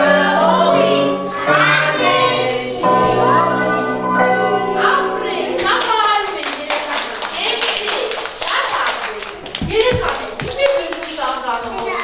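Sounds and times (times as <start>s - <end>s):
voices: 4.6s - 12.0s
children clapping: 5.6s - 12.0s.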